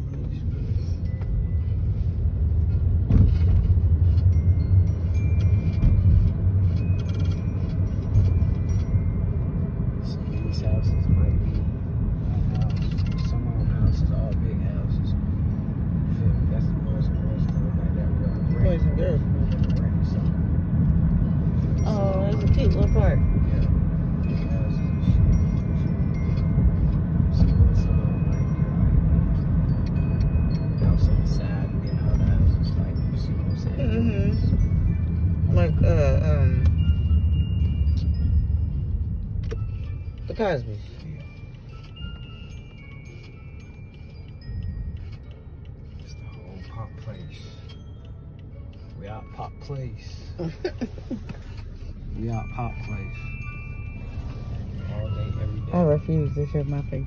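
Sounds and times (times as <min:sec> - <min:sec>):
car driving rumble: 0:00.0 - 0:57.0
music playing: 0:00.0 - 0:57.0.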